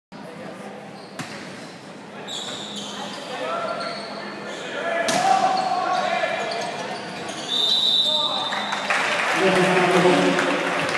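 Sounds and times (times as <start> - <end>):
shouts echoing in a hall: 4.6 - 10.9.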